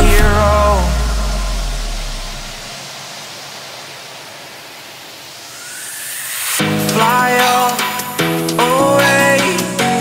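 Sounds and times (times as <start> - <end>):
deep bass note: 0.0 - 2.7
white-noise sweep hiss: 0.0 - 10.0.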